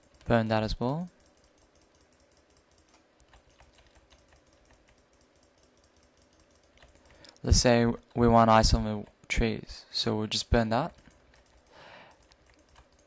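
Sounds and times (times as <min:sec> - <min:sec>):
rapid computer mouse clicking: 0:00.0 - 0:09.3, 0:10.8 - 0:13.0.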